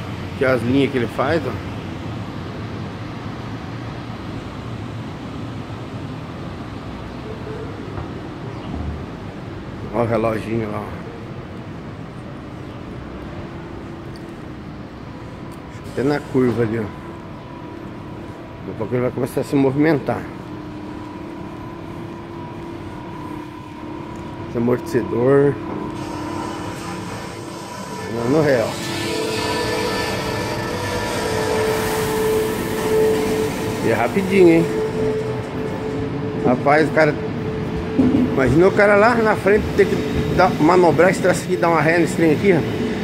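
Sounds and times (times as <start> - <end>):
low rumble and hum of train: 0.0 - 43.0.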